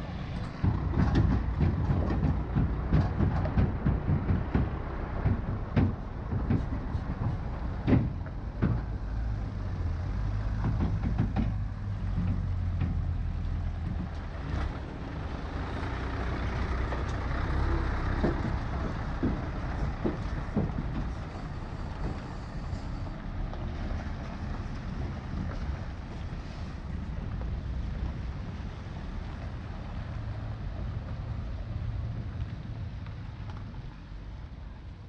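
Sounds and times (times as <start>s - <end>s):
truck engine rumble: 0.0s - 35.0s
trucks knocking and rattling on gravel: 0.0s - 35.0s.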